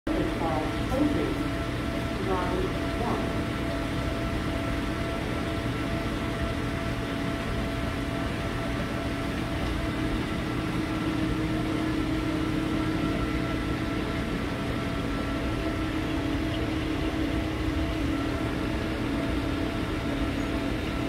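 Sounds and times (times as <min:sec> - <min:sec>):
aquarium filtration hum and hiss: 0:00.1 - 0:21.0
faint steady tones: 0:00.1 - 0:21.0.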